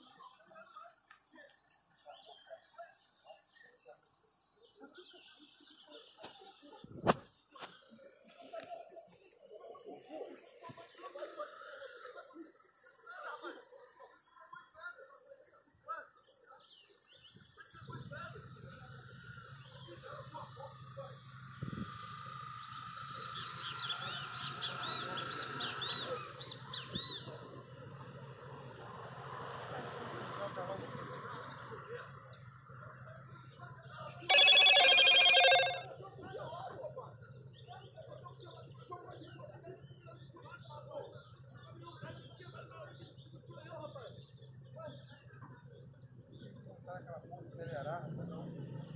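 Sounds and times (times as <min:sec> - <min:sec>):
distant people arguing: 0:00.0 - 0:48.9
loud steady tone: 0:34.3 - 0:35.9.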